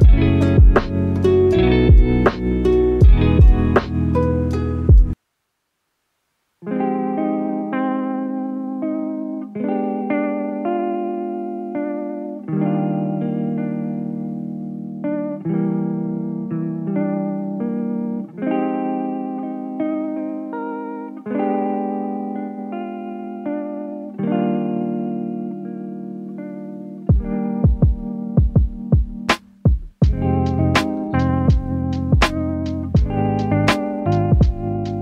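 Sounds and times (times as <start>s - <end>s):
guitar background music: 0.0s - 5.2s, 6.6s - 35.0s.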